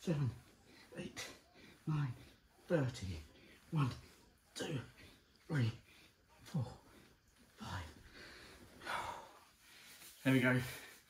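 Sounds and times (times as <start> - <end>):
man counting: 0.0 - 8.2, 10.1 - 11.0
man breathing hard: 3.2 - 11.0.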